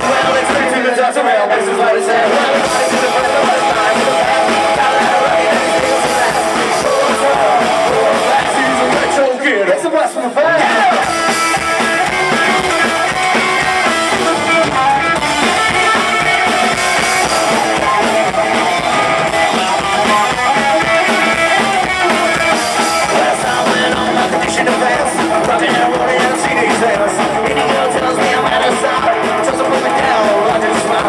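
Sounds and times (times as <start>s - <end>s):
rock and roll band playing: 0.0s - 31.0s.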